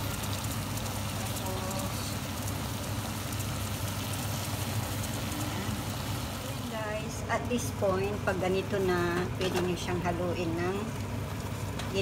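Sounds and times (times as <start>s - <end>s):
pork sizzling in sugar: 0.0s - 12.0s.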